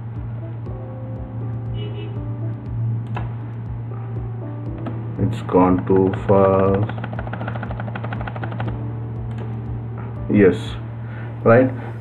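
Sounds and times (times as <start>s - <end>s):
low electrical hum: 0.0s - 12.0s
keyboard or mouse clicks: 3.0s - 3.3s, 5.6s - 9.6s.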